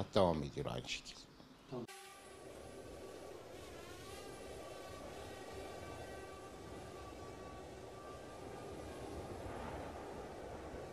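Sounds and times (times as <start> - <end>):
steady rushing noise: 2.4 - 10.9.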